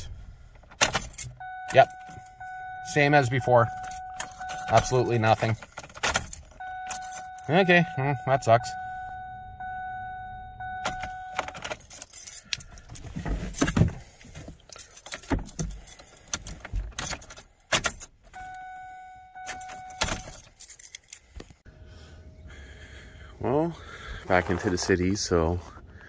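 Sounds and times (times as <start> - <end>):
keys jangling in ignition: 0.6 - 7.7, 10.6 - 18.8, 19.4 - 21.4
electronic warning tone: 1.4 - 5.4, 6.6 - 11.6.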